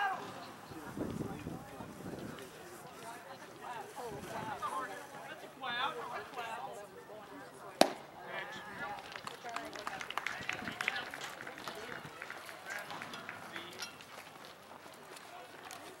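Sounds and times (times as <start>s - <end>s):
crowd calling out and cheering: 0.0s - 16.0s
sharp claps: 9.0s - 13.8s.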